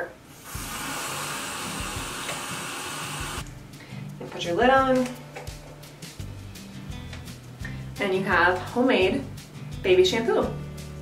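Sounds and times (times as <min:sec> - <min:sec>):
faucet running water into jar: 0:00.4 - 0:03.4.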